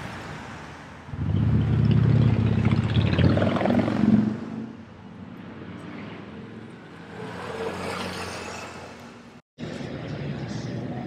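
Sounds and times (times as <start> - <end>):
city traffic noise: 0.0 - 11.0.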